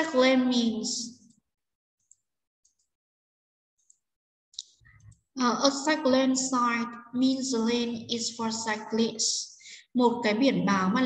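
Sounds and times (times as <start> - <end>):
faint computer mouse clicking: 2.0 - 3.0, 3.8 - 5.3.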